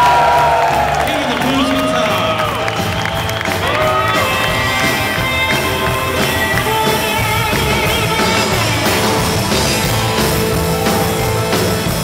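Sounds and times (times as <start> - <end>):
drums: 0.0 - 12.0
electric guitar: 0.0 - 12.0
live rock and roll band: 0.0 - 12.0.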